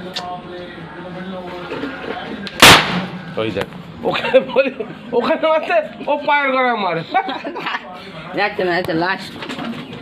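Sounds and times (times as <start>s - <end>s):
firecracker bang: 2.6s - 3.4s.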